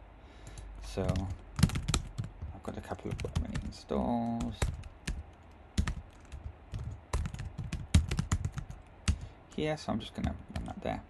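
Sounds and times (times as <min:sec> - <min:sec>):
typing on computer keyboard: 0:01.0 - 0:09.6, 0:10.2 - 0:10.8.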